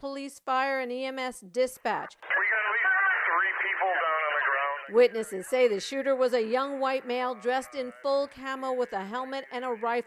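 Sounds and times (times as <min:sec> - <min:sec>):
voice over two-way radio: 0:02.2 - 0:05.0.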